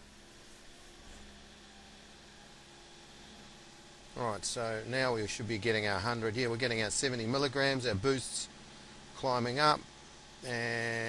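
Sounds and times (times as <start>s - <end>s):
faint engine hum with hiss: 0.0s - 11.0s.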